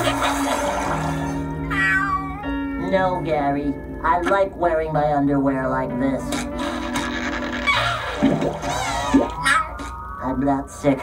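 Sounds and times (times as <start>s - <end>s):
cartoon background music: 0.0s - 11.0s
watery sound effects: 7.6s - 10.6s.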